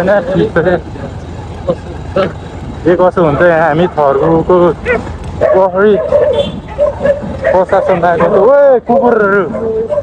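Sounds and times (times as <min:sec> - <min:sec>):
motorcycle engine rumble: 0:00.0 - 0:10.0
road and wind noise: 0:00.0 - 0:10.0.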